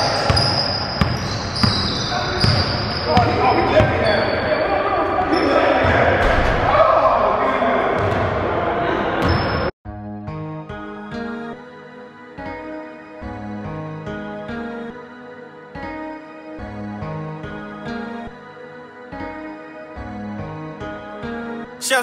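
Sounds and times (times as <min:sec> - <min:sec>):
sneaker squeaks: 0:00.0 - 0:04.6, 0:05.2 - 0:05.7, 0:09.2 - 0:09.7
basketballs bouncing on wooden floor: 0:00.3 - 0:04.0
players' voices echoing: 0:01.9 - 0:09.3, 0:21.8 - 0:22.0.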